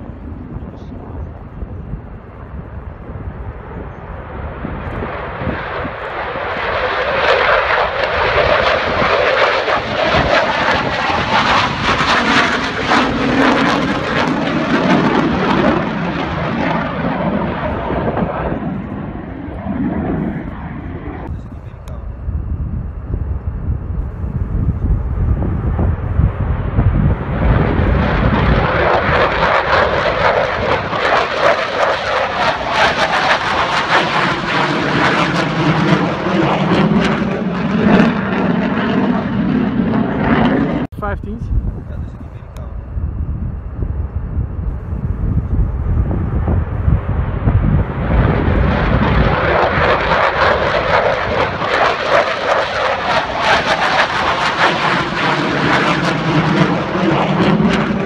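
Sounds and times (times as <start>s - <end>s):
fighter jet engine noise: 0.0s - 58.0s.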